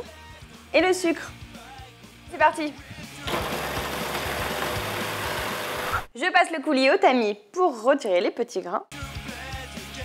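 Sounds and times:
food processor motor running: 0:03.3 - 0:06.1.

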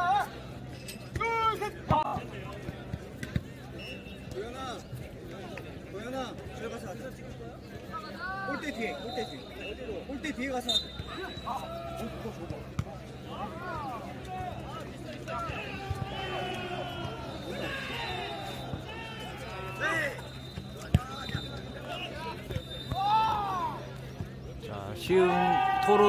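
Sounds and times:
players shouting: 0:10.6 - 0:24.2, 0:25.0 - 0:26.0
ball kicked and bouncing thuds: 0:12.4 - 0:13.0, 0:20.5 - 0:21.4.

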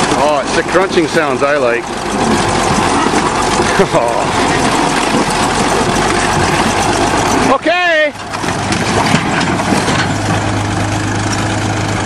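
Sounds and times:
bulldozer diesel engine running: 0:00.0 - 0:12.0.

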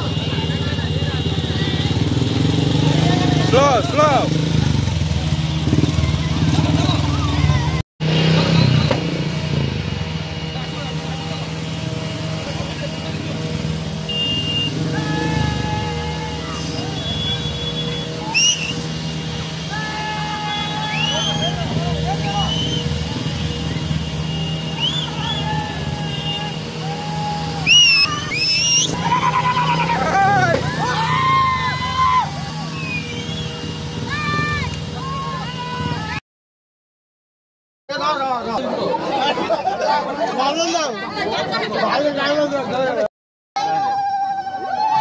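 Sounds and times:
crowd voices: 0:00.0 - 0:36.2, 0:37.9 - 0:45.0
motorcycle engines running: 0:00.0 - 0:36.2
loud rising whistles: 0:14.1 - 0:19.0, 0:20.4 - 0:21.6, 0:22.2 - 0:29.8, 0:30.7 - 0:34.7
people shouting: 0:14.1 - 0:36.2, 0:43.6 - 0:45.0.

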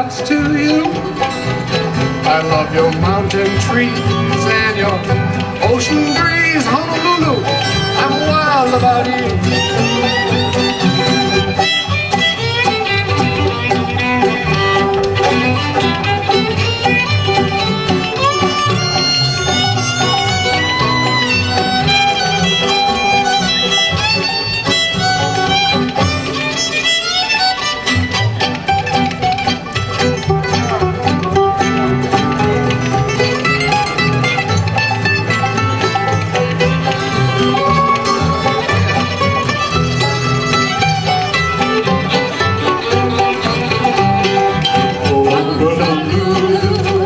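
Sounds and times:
fiddle playing a tune: 0:00.0 - 0:47.0
strummed banjo and guitar: 0:00.0 - 0:47.0.

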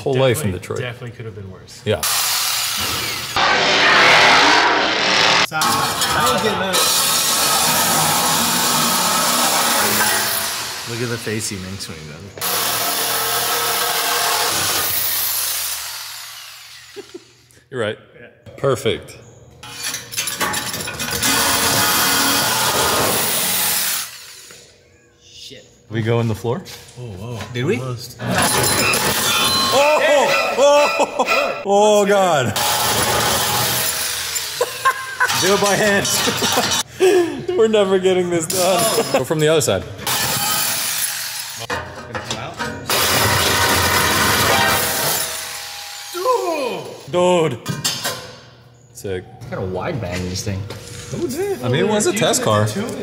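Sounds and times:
power saw cutting metal pipe: 0:02.0 - 0:11.5, 0:12.4 - 0:17.0, 0:21.0 - 0:24.5, 0:32.6 - 0:36.8, 0:40.0 - 0:41.8, 0:42.8 - 0:46.2.

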